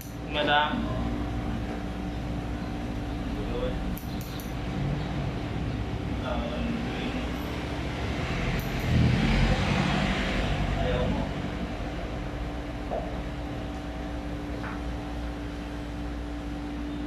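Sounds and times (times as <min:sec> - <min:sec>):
steady background hum: 0:00.0 - 0:17.0.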